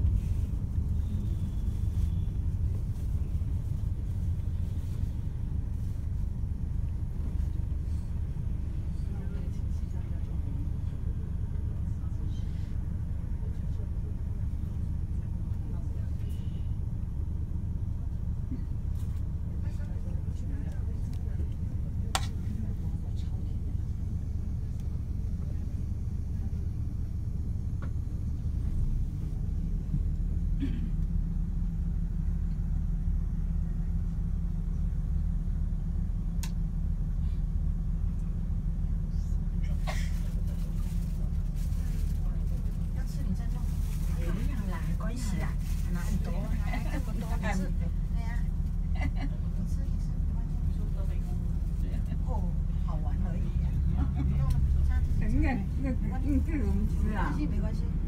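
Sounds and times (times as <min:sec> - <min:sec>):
vehicle engine and road rumble: 0:00.0 - 0:58.0.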